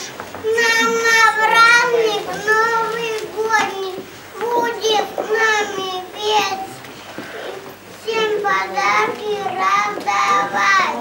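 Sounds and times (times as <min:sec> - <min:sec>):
child reciting in sing-song voice: 0:00.4 - 0:11.0.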